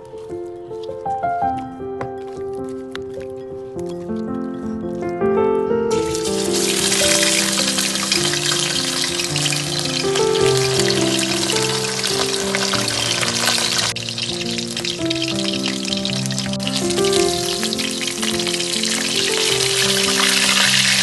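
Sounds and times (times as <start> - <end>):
fish sizzling in hot oil: 5.9 - 21.0.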